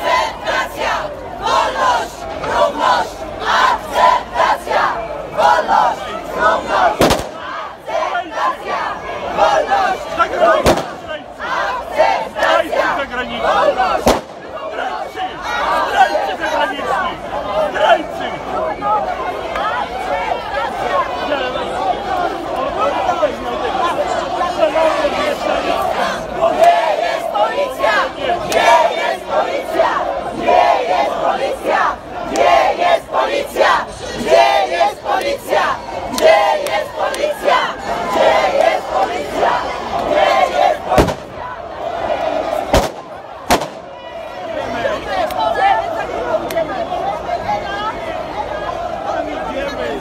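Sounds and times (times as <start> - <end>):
large crowd shouting: 0.0 - 50.0
sharp cracks or bangs: 41.0 - 41.4, 42.7 - 43.9.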